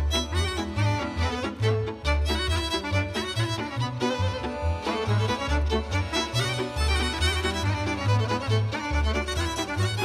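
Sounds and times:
violin melody: 0.0 - 10.0.

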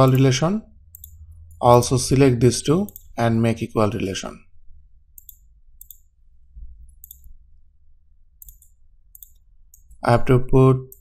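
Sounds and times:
computer mouse clicking: 0.0 - 0.3, 0.9 - 1.6, 2.8 - 3.1, 5.2 - 6.1, 6.9 - 7.4, 8.4 - 10.0.

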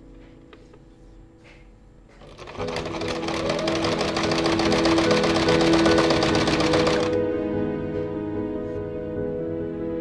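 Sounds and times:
background music: 0.0 - 10.0
sewing machine stitching: 2.2 - 7.2.

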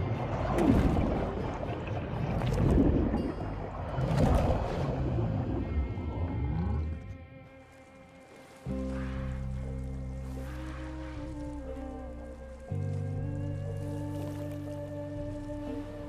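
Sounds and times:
sustained low music chord: 2.4 - 16.0.

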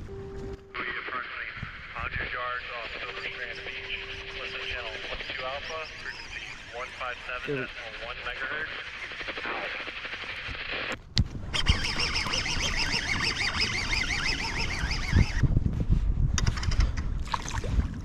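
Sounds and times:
voice over marine radio: 0.7 - 10.8.

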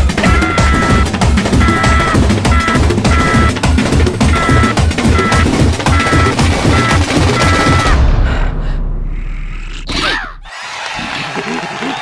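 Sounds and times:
drumming on kitchen tins: 0.0 - 8.0
cartoon bugs chattering: 0.2 - 8.0.

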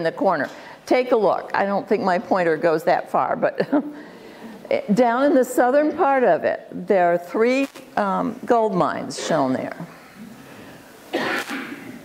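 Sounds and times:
person coughing: 11.1 - 12.0.

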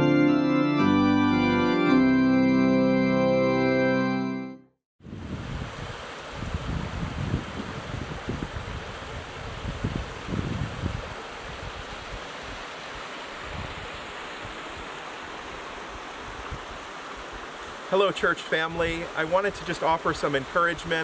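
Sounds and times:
wind buffeting microphone: 5.0 - 12.2.

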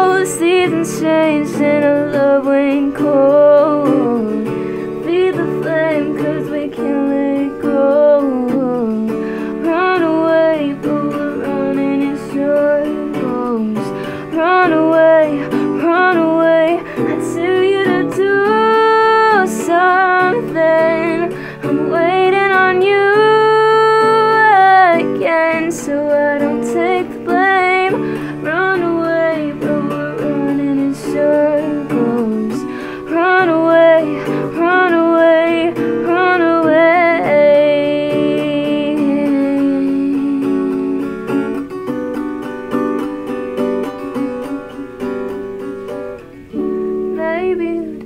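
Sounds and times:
woman singing: 0.0 - 41.7, 43.0 - 48.0
acoustic guitar: 0.0 - 48.0.

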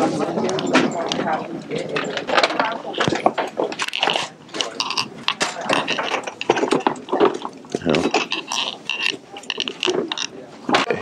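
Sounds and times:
hubbub of voices: 0.0 - 11.0
mechanical clicking and rattling: 0.5 - 10.9.

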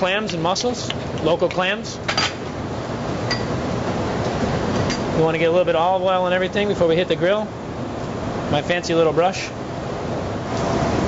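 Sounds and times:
restaurant kitchen background noise: 0.0 - 11.0.

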